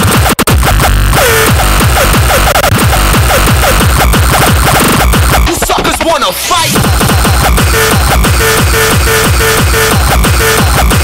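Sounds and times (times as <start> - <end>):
distorted electronic music: 0.0 - 11.0
pounding kick drums: 0.0 - 11.0.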